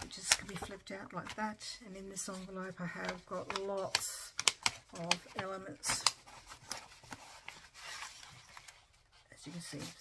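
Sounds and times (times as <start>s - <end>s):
paper rustling and scraping: 0.0s - 10.0s.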